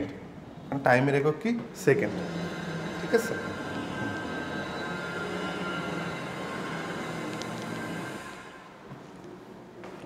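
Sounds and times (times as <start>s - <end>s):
room noise with hum: 0.0s - 10.0s.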